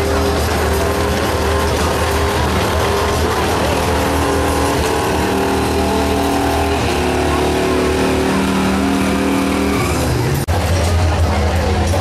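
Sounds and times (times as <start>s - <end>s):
truck engine running under load: 0.0s - 10.5s.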